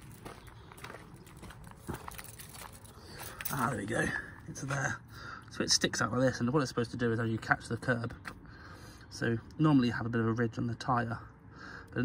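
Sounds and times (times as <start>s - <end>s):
footsteps on gravel and grass: 0.0s - 4.9s.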